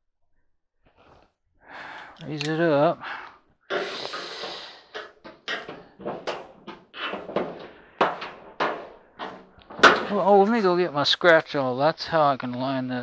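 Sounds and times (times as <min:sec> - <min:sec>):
screwdriver scraping sheet metal: 0:03.7 - 0:10.2
knocks on sheet metal: 0:05.0 - 0:10.2.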